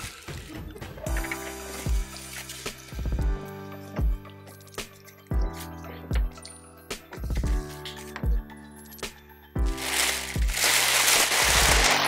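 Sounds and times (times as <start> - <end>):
plastic wrap crumpling: 0.0 - 0.6, 9.6 - 12.0
background music with beat: 0.0 - 12.0.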